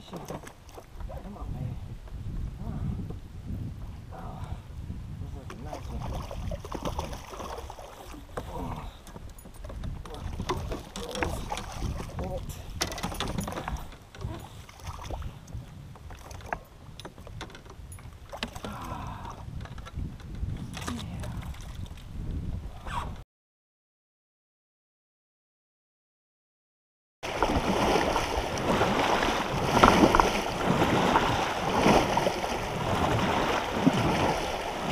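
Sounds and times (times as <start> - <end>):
knocks and clicks from kayak: 6.4 - 22.1, 27.2 - 34.9
fish splashing at surface: 27.2 - 34.9.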